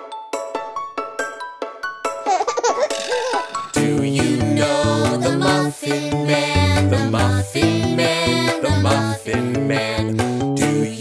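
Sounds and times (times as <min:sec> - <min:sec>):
cheerful children's song: 0:00.0 - 0:11.0
baby giggling: 0:02.2 - 0:03.8.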